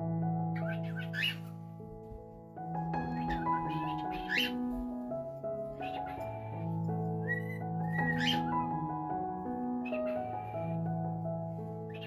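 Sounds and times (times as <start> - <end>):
background music with chords: 0.0 - 12.0
cockatiel whistling: 0.6 - 1.4, 3.2 - 4.6, 7.2 - 8.7.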